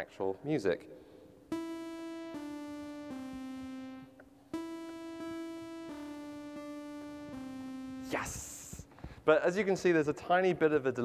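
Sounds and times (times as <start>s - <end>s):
sawtooth synth notes descending: 1.5s - 8.2s.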